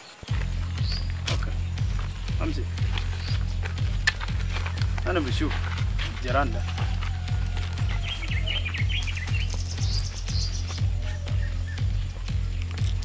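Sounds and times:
birds chirping: 0.0s - 13.0s
music with bass beat: 0.2s - 13.0s.

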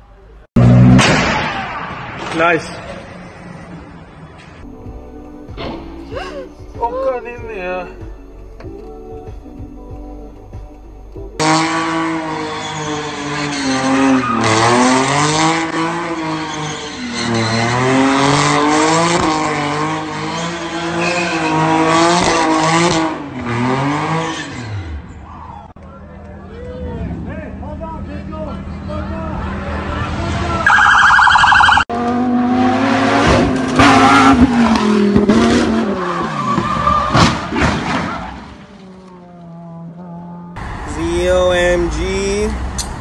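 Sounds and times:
car engine revving: 11.4s - 25.1s, 31.5s - 43.0s.

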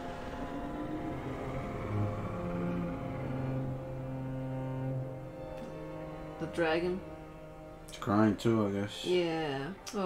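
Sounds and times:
dark orchestral music: 0.0s - 10.0s.

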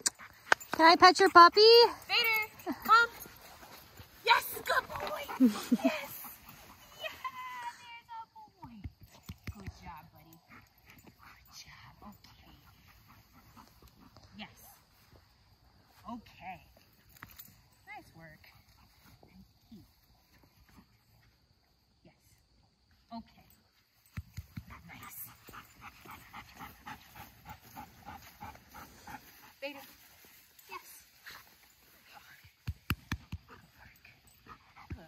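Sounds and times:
dog panting: 0.0s - 7.0s, 10.2s - 14.4s, 24.7s - 30.2s, 33.2s - 35.0s.

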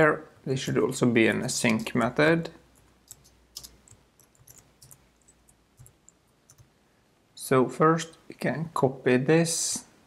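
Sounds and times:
faint computer keyboard typing: 2.7s - 6.8s.

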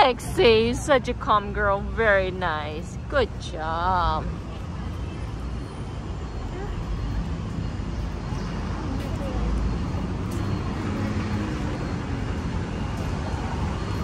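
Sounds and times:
passing vehicles rumble and hiss: 0.0s - 14.0s.

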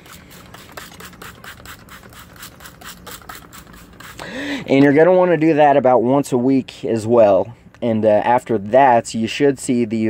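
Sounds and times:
spray bottle spritzes: 0.0s - 4.4s.

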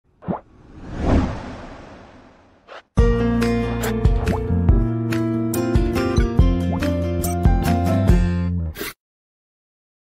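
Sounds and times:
whoosh into low boom: 0.4s - 2.6s.

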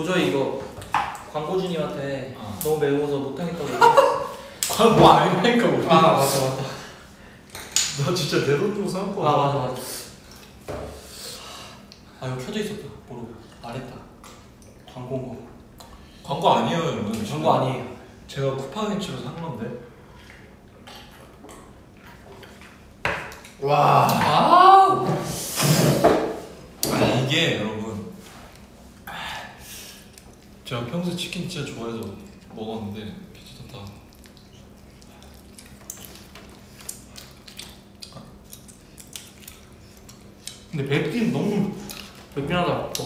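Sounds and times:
man talking: 40.7s - 43.0s.

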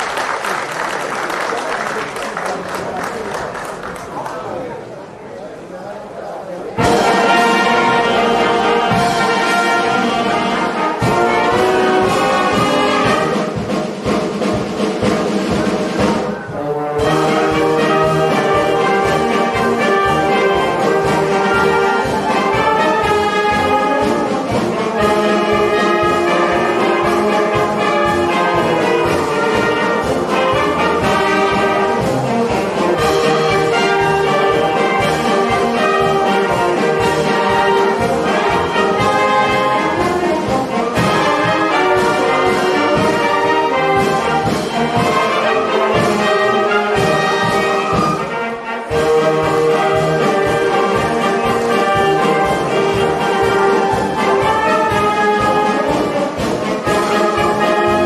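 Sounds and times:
drum beat: 6.8s - 16.4s, 17.0s - 58.0s
brass band playing a march: 6.8s - 58.0s.

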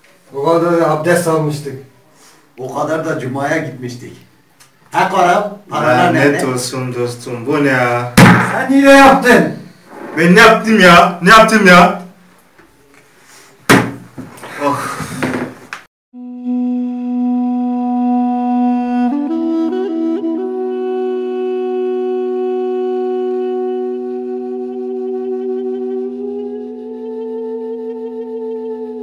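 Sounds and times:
sharp thump: 8.2s - 8.7s, 13.7s - 14.0s.

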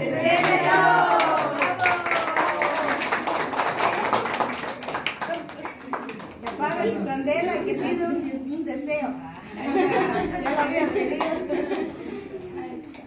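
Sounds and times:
group clapping in rhythm: 0.0s - 7.0s.

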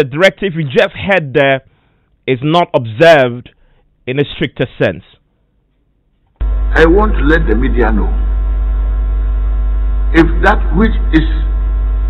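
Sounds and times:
electrical mains hum: 5.5s - 12.0s.

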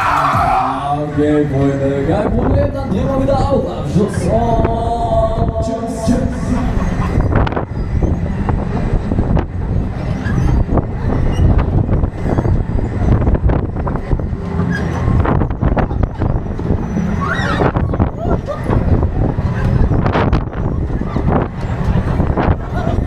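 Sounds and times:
fairground ride rumble: 0.0s - 23.0s.

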